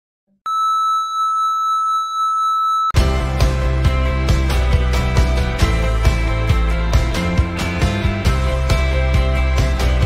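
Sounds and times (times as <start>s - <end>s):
steady high-pitched beep: 0.5s - 3.0s.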